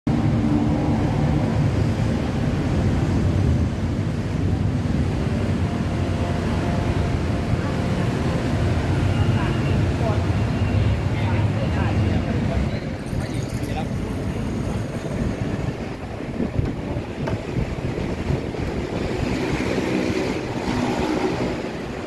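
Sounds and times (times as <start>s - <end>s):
traffic rumble: 0.1s - 22.0s
people talking nearby: 7.3s - 17.6s.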